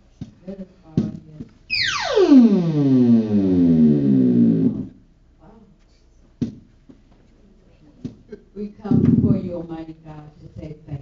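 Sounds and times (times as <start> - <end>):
electronic keyboard tone sliding down: 1.7 - 5.0.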